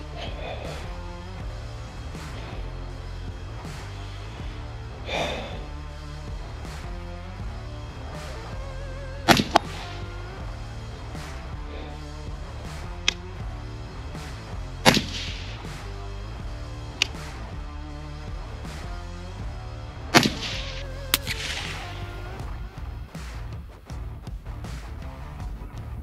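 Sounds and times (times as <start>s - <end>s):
background music: 0.0s - 26.0s
suppressed rifle shots: 20.2s - 22.4s.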